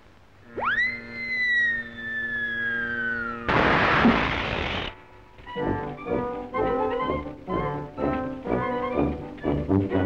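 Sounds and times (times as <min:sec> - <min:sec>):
cartoon whistle sliding down: 0:00.6 - 0:04.9.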